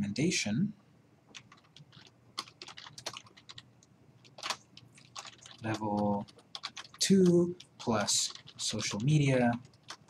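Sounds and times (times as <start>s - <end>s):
keyboard typing clicks: 1.3s - 10.0s.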